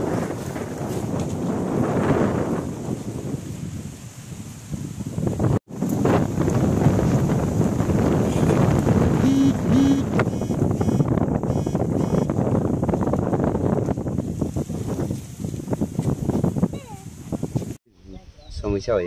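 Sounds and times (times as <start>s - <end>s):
wind buffeting microphone: 0.0s - 19.0s
short steady pitched notes: 9.2s - 12.3s.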